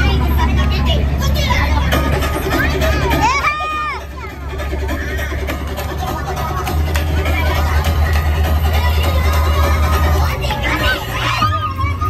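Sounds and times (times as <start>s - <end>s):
heavy low rumble: 0.0s - 12.0s
women shouting and singing: 0.0s - 12.0s.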